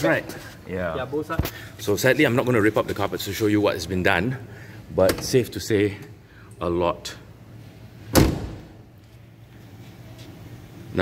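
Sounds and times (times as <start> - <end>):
car door slamming shut: 8.1 - 8.8.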